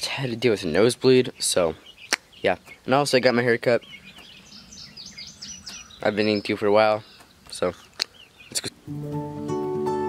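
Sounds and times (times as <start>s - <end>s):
birds chirping and whistling: 0.0s - 9.6s.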